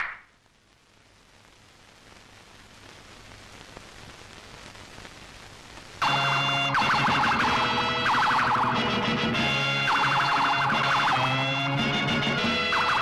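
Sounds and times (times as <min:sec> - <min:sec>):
faint hiss: 0:00.0 - 0:06.8.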